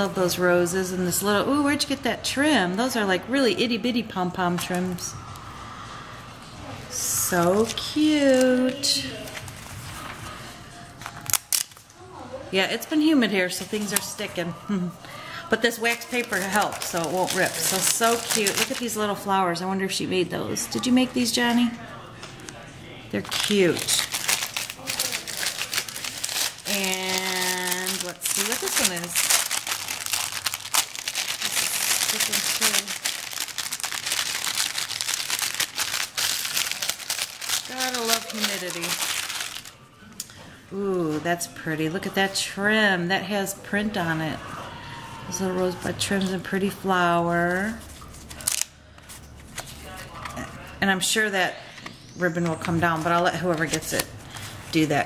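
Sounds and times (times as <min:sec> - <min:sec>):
wax paper crackling: 0:07.0 - 0:12.0, 0:12.8 - 0:14.4, 0:15.5 - 0:19.6, 0:23.2 - 0:39.9, 0:47.3 - 0:50.8, 0:51.8 - 0:55.0
plastic bag crinkling: 0:15.7 - 0:19.3, 0:23.2 - 0:39.8, 0:47.7 - 0:50.3.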